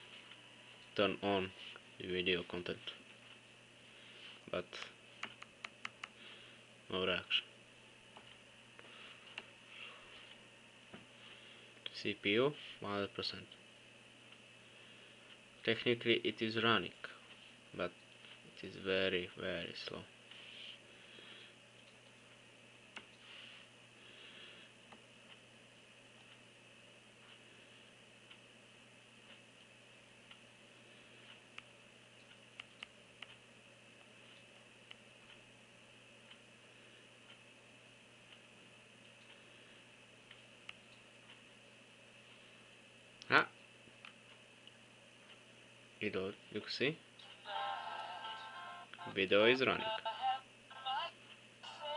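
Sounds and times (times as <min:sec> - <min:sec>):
low hiss and hum: 0:00.0 - 0:51.9.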